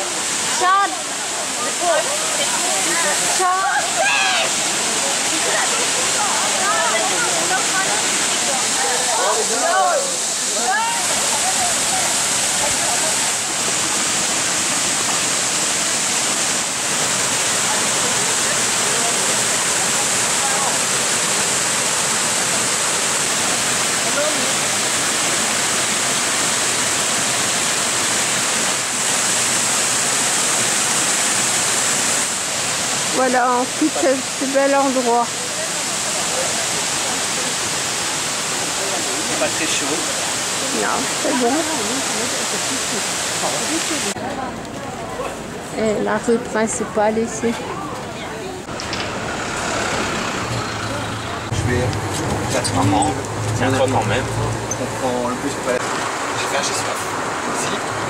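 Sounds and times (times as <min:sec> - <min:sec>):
waterfall rushing: 0:00.0 - 0:58.0.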